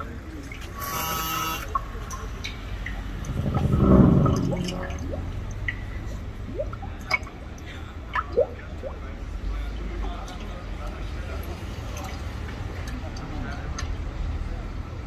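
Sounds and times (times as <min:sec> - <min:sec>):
water dripping and bubbling: 0:01.7 - 0:15.0.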